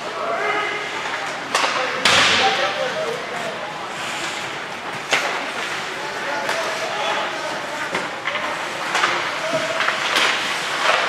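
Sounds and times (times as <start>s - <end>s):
hockey stick crack: 1.0s - 11.0s
skates scraping ice: 2.6s - 11.0s.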